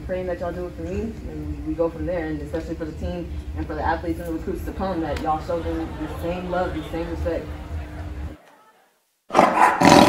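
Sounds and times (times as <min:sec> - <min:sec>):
tiger roaring: 0:09.3 - 0:10.0.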